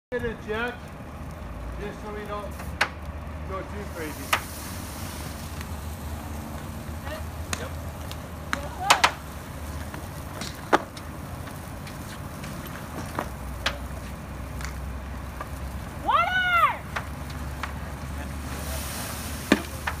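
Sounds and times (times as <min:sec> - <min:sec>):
fire cracking and popping: 0:00.1 - 0:20.0
low fire rumble: 0:00.1 - 0:20.0.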